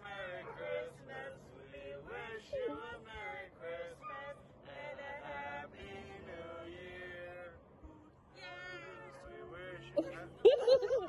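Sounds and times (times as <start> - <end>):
faint singing voice: 0.0 - 11.0.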